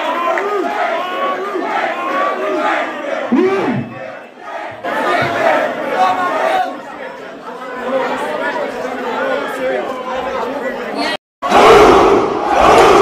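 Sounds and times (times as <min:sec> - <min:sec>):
crowd cheering: 0:00.0 - 0:10.5, 0:11.4 - 0:13.0
crowd talking and shouting: 0:00.0 - 0:13.0.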